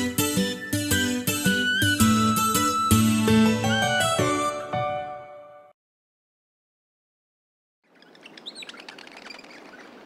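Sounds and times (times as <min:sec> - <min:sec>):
birds chirping: 0:07.8 - 0:10.0.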